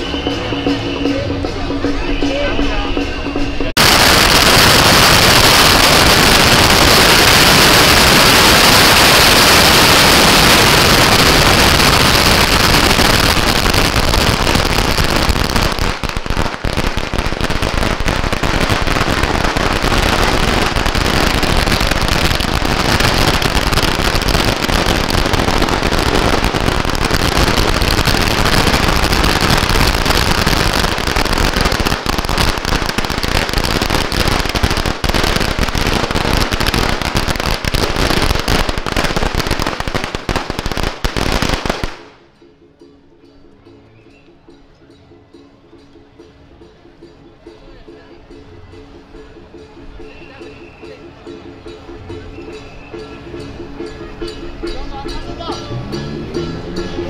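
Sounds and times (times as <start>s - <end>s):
firecrackers crackling: 3.6s - 42.3s.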